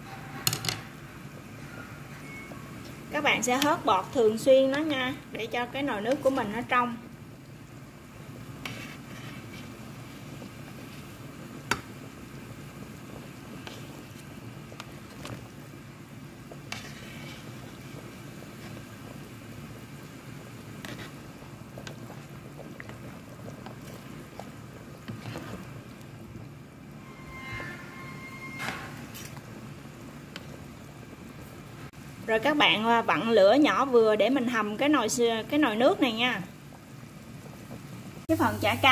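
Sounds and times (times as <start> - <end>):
broth bubbling at a boil: 1.1 - 27.3, 29.0 - 38.9.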